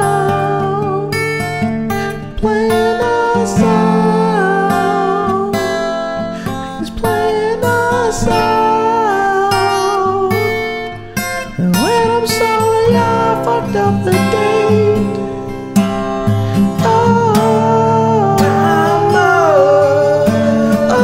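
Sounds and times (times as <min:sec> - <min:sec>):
guitar bending notes: 0:00.0 - 0:21.0.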